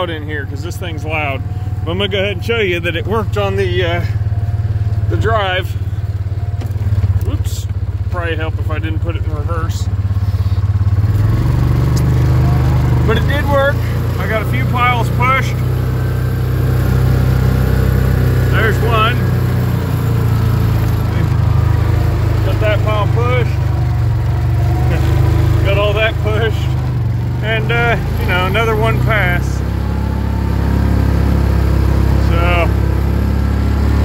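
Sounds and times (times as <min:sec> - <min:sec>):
single-cylinder engine running: 0:00.0 - 0:34.0.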